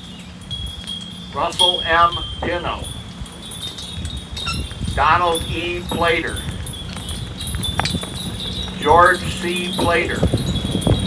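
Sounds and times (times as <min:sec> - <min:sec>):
low rumble: 0:00.0 - 0:11.0
wind chimes ringing: 0:00.0 - 0:11.0
person speaking names: 0:01.4 - 0:02.9, 0:05.0 - 0:06.4, 0:08.8 - 0:10.3.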